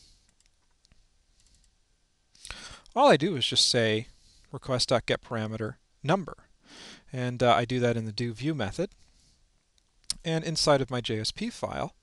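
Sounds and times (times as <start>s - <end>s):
intake of breath: 2.4s - 2.9s, 6.6s - 7.1s.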